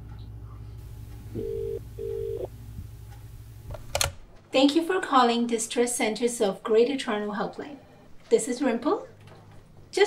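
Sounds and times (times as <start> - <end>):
telephone ringback tone: 1.3 - 2.5.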